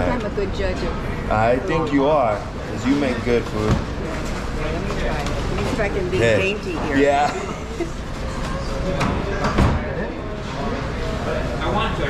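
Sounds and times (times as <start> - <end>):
voices in a room: 0.0 - 12.0.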